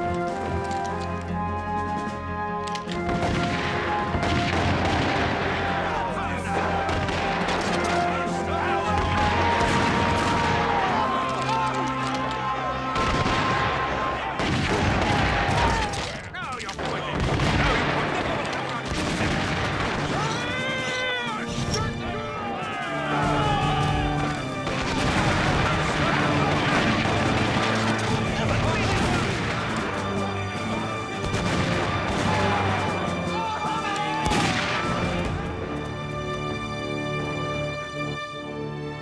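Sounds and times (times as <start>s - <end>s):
orchestral music: 0.0s - 39.0s
musket fire: 1.9s - 35.8s
voices: 5.4s - 14.4s, 15.1s - 31.3s, 31.9s - 35.2s.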